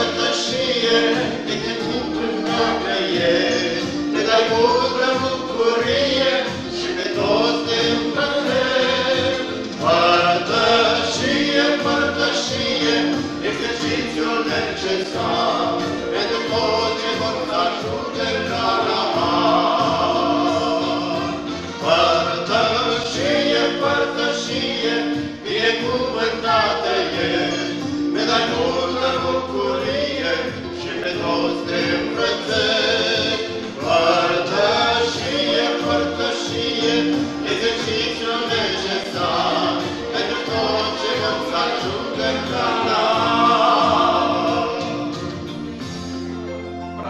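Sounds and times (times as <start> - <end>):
girls singing a hymn duet: 0.0 - 45.4.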